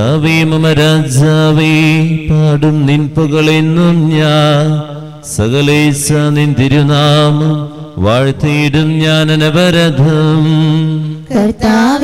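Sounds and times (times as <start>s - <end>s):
man chanting a prayer: 0.0s - 11.3s.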